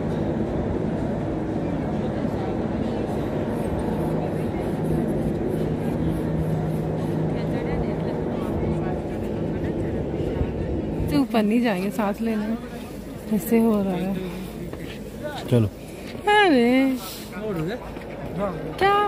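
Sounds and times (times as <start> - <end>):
cable car machinery humming: 0.0 - 19.0
faint voices: 0.0 - 19.0.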